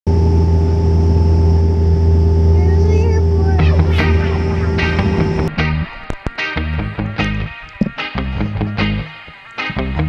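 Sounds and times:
airplane cabin drone: 0.1s - 9.1s
steady held tones: 0.1s - 10.0s.

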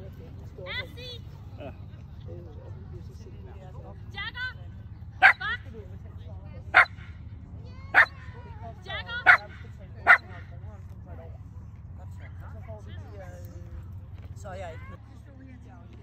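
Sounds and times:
dog barking: 5.2s - 5.5s, 6.7s - 7.1s, 7.9s - 8.2s, 9.2s - 10.5s.

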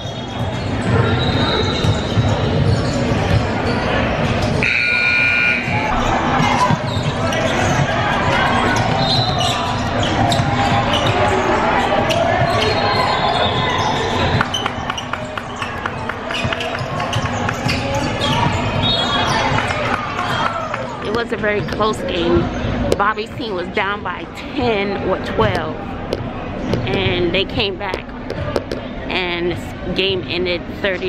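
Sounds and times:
basketball bouncing on court: 0.0s - 23.5s, 25.4s - 28.8s
voices echoing in gym: 0.0s - 31.0s.

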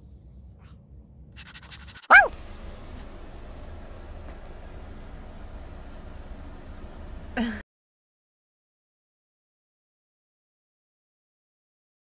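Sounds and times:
dog barking: 1.4s - 2.4s.

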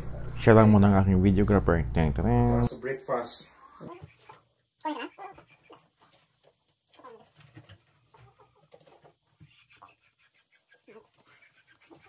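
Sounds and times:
hen calling: 3.6s - 5.9s.

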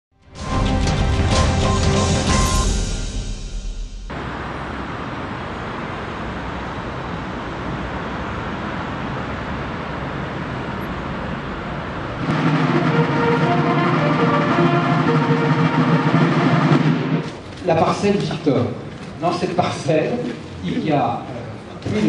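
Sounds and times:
military band playing with drums: 0.4s - 4.0s, 12.2s - 18.0s
traffic rush: 0.4s - 22.0s.

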